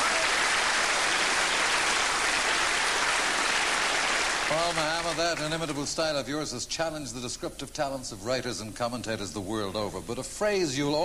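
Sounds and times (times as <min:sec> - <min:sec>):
crowd applauding and cheering: 0:00.0 - 0:05.8.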